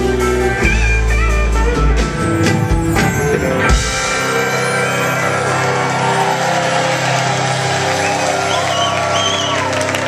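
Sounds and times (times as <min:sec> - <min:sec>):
crowd cheering and whooping: 0:02.8 - 0:10.0.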